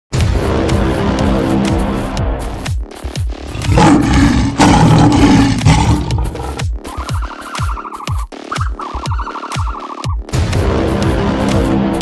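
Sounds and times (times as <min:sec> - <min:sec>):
background music with a beat: 0:00.2 - 0:12.0
lion roaring: 0:03.5 - 0:06.6.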